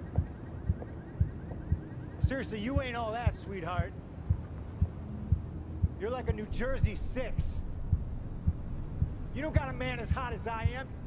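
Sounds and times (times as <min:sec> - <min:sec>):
faint hum: 0:00.0 - 0:11.0
low heartbeat-like thumps: 0:00.0 - 0:11.0.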